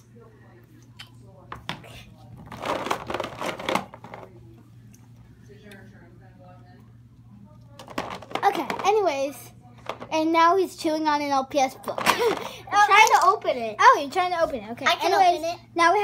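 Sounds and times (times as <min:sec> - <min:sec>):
plastic toys rustling and clattering: 0:02.3 - 0:04.4, 0:07.8 - 0:10.3, 0:11.8 - 0:13.7
child speaking: 0:08.4 - 0:09.5, 0:10.1 - 0:16.0.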